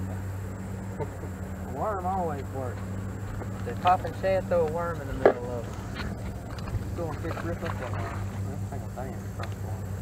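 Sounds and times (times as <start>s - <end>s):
steady low hum: 0.0s - 10.0s
man speaking: 1.7s - 2.8s, 3.6s - 5.7s, 6.9s - 9.6s.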